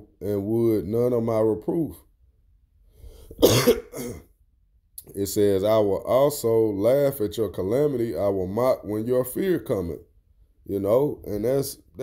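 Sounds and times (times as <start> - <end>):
man coughing: 3.4 - 4.3.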